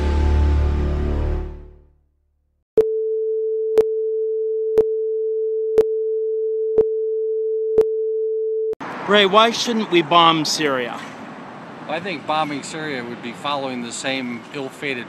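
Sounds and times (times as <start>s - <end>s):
music: 0.0s - 1.9s.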